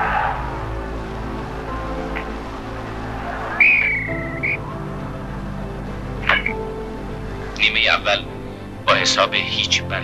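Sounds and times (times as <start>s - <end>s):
background music: 0.0s - 10.0s
referee's whistle: 3.6s - 4.6s.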